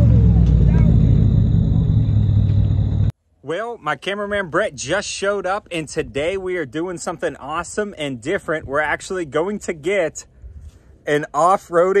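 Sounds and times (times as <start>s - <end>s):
car engine and exhaust rumbling: 0.0s - 3.1s.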